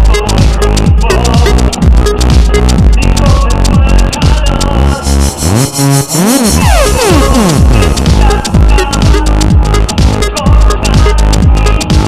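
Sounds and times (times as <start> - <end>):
bass drum beat: 0.0 - 12.0
synthesizer tones sweeping: 4.9 - 8.5.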